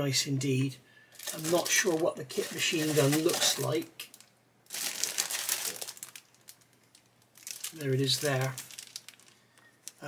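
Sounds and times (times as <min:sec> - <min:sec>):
plastic bag crinkling: 0:01.1 - 0:10.0.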